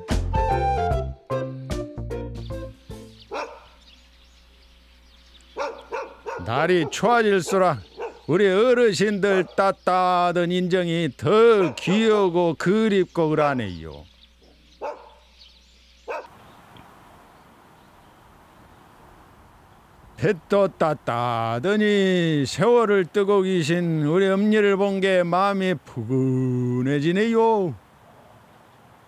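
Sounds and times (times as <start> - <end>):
faint outdoor background noise: 2.3 - 29.0
dog barking: 3.3 - 3.8, 5.6 - 8.3, 9.4 - 9.6, 11.5 - 12.0, 14.4 - 15.3, 16.1 - 16.3.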